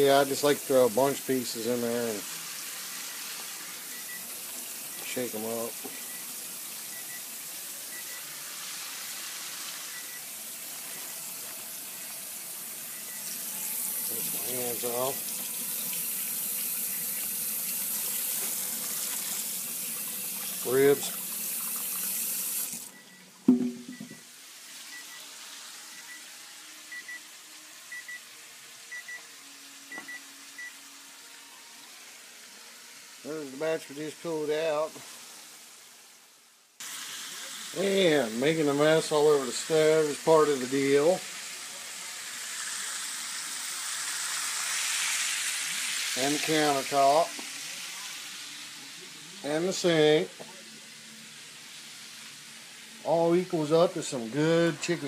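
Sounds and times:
chicken sizzling in hot oil: 0:00.0 - 0:23.3, 0:24.2 - 0:55.0
faucet running into steel sink: 0:00.0 - 0:24.0
microwave keypad beeps: 0:03.9 - 0:04.3, 0:06.9 - 0:07.3, 0:22.9 - 0:24.2, 0:24.9 - 0:25.3, 0:26.9 - 0:27.2, 0:27.9 - 0:28.3, 0:28.9 - 0:29.3, 0:29.9 - 0:30.8
loud thump: 0:23.5 - 0:24.1.

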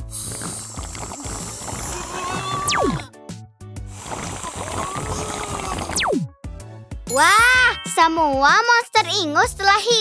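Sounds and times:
wet suction noise: 0:00.0 - 0:03.1, 0:03.8 - 0:06.2
background music: 0:00.0 - 0:10.0.

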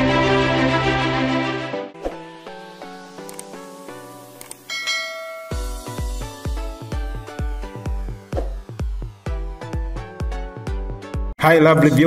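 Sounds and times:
plucked background music: 0:00.0 - 0:12.0
electronic dance music: 0:02.4 - 0:12.0
quick clicks: 0:03.2 - 0:03.6, 0:04.4 - 0:04.7
notification bell chime: 0:04.7 - 0:06.1.

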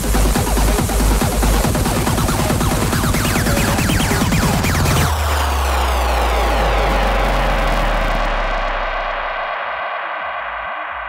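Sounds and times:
held deep bass note: 0:00.0 - 0:09.5
falling whooshing synth sweep: 0:01.4 - 0:09.6.

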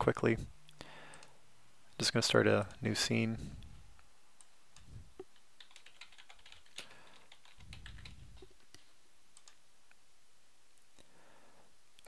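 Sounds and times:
keyboard typing clicks: 0:04.4 - 0:09.6.

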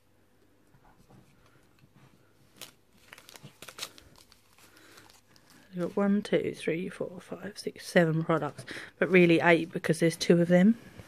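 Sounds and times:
sachets crinkling: 0:02.4 - 0:06.0.

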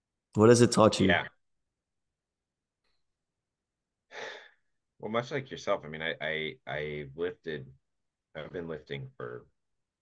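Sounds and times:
person breathing: 0:04.1 - 0:04.8.

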